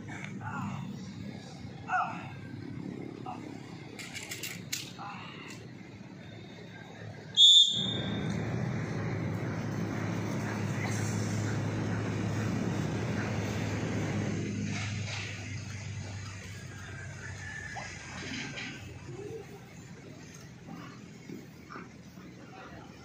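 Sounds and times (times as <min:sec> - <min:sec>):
steady low rumble: 0:00.0 - 0:18.2
high-pitched whistle blast: 0:07.4 - 0:08.2.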